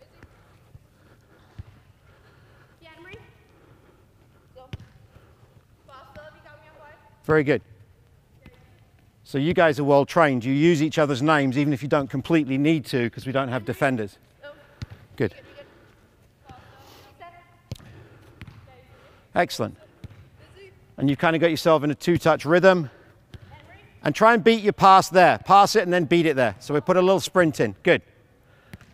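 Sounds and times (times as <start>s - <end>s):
soccer ball kick thump: 4.7s - 5.0s, 17.7s - 18.7s, 20.0s - 20.3s.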